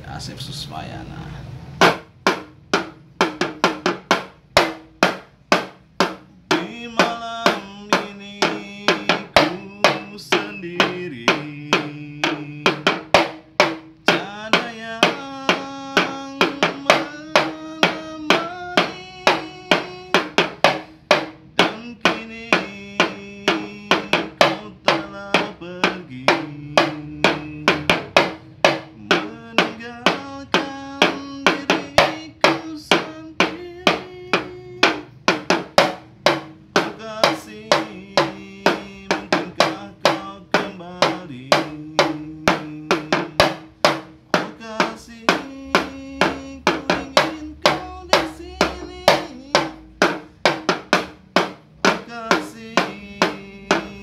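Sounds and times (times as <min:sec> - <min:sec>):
small drums struck with sticks: 0:01.8 - 0:54.0.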